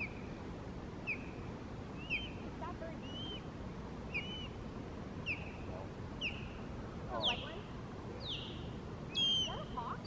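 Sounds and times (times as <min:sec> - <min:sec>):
river rushing: 0:00.0 - 0:10.0
high bird chirps: 0:02.0 - 0:02.4, 0:03.0 - 0:03.5, 0:04.1 - 0:04.6, 0:05.2 - 0:07.6, 0:08.2 - 0:10.0.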